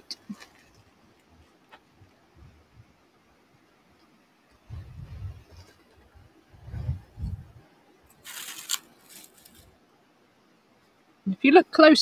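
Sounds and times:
low rumbles: 4.5s - 7.7s
microphone handling and wind noise: 4.6s - 7.6s
brief rustle: 8.1s - 9.7s.

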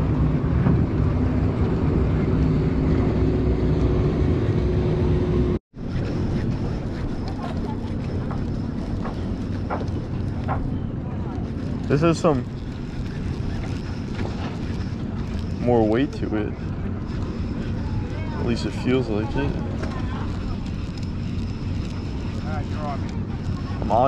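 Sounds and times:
wind rumbling on microphone: 0.0s - 24.0s.

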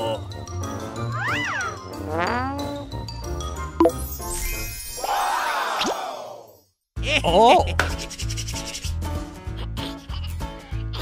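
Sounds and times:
hands rubbing together: 7.8s - 9.0s.

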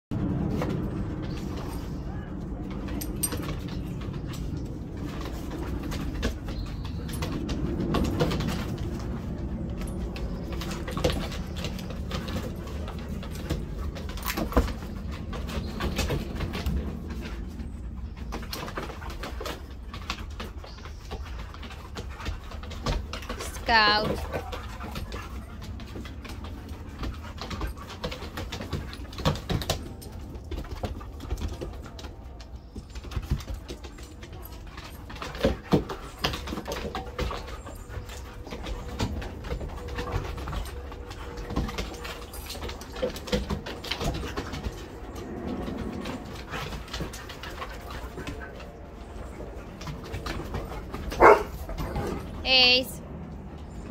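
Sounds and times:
dogs play growling: 0.2s - 52.4s
paws scuffling on wooden deck: 0.2s - 52.7s.

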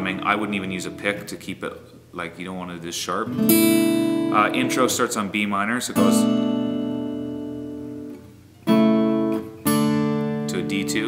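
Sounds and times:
acoustic guitar chord strummed: 3.3s - 11.0s.

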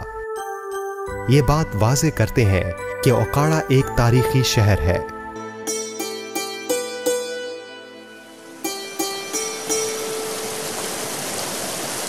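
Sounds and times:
held music note: 3.0s - 10.8s
water rushing through gates: 8.4s - 12.0s.

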